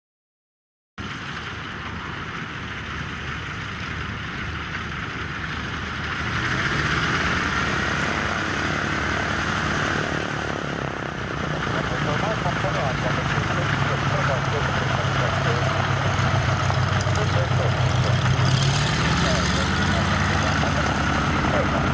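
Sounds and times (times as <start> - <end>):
twin piston aircraft engines taxiing: 1.0 - 21.9.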